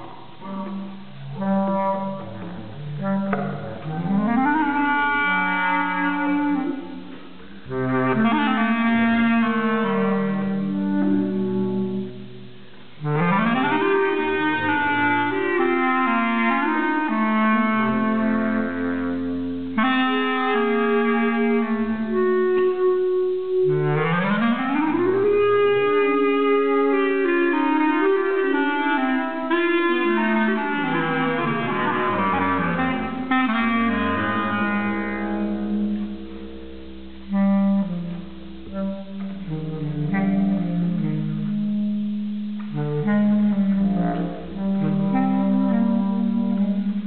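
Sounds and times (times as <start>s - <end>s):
clarinets playing long notes: 0.0s - 47.0s.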